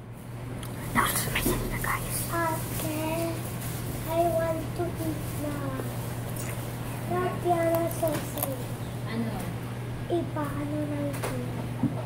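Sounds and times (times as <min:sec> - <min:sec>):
steady low hum: 0:00.0 - 0:12.0
child singing: 0:02.2 - 0:03.4, 0:04.1 - 0:05.8, 0:07.1 - 0:08.7.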